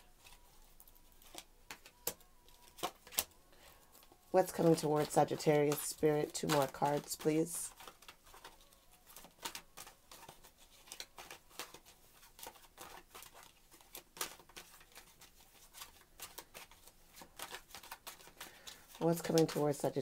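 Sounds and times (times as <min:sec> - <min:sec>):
cards being shuffled: 0:00.0 - 0:20.0.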